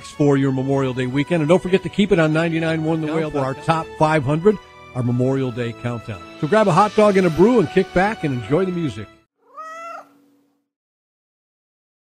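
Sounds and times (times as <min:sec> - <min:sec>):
cat meowing: 0:09.4 - 0:10.3.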